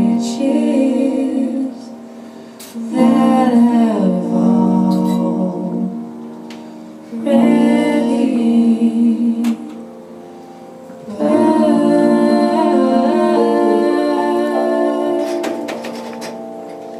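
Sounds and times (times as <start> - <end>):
woman singing wordless notes: 0.0 - 6.2, 7.1 - 10.3, 11.0 - 16.5
piano chords: 0.0 - 16.9.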